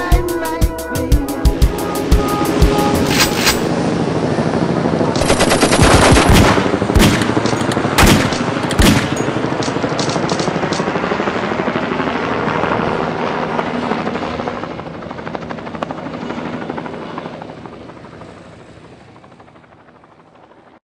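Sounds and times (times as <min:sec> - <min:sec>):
fast mechanical chopping: 0:05.2 - 0:09.3.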